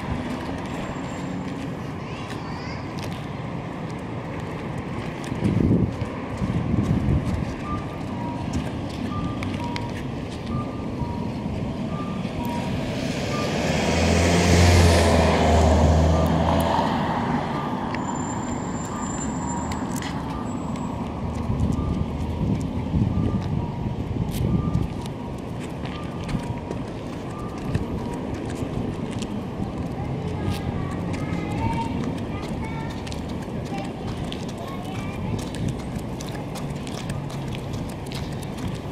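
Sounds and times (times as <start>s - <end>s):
footsteps on pavement: 0.0s - 38.9s
two-pitch electronic beeps: 7.6s - 13.5s, 21.7s - 28.2s
vehicle driving past: 12.4s - 19.8s.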